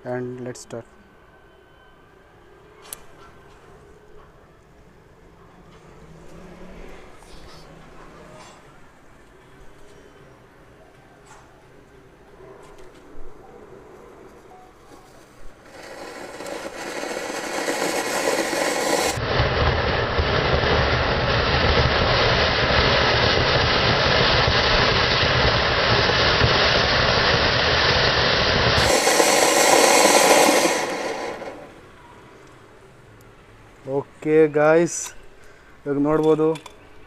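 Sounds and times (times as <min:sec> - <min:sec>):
firework fountain hissing: 0:15.4 - 0:32.0.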